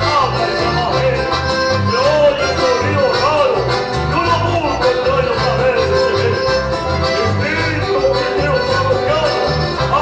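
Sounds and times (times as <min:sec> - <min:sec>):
accordions playing a melody: 0:00.0 - 0:10.0
pulsing bass: 0:00.0 - 0:10.0.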